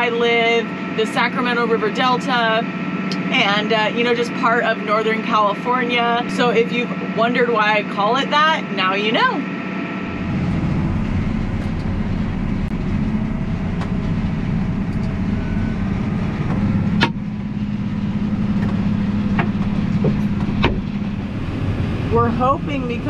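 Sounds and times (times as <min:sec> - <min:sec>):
tractor diesel engine drone: 0:00.0 - 0:23.0.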